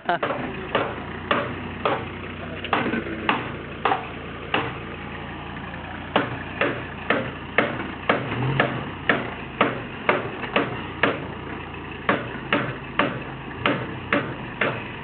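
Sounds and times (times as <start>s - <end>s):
diesel engine running slowly: 0.0s - 15.0s.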